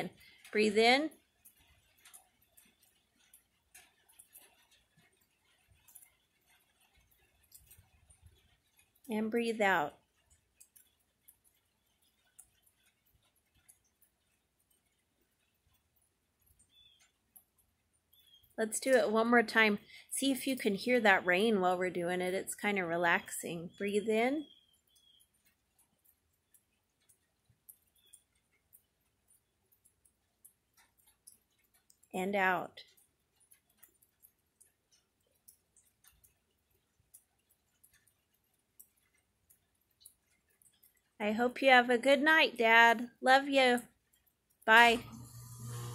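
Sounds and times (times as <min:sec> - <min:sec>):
rain dripping: 0:00.0 - 0:45.9.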